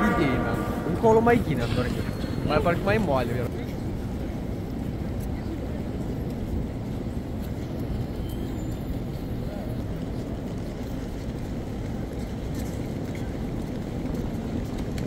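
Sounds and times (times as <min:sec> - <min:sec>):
low rumble of city noise: 0:00.0 - 0:15.0.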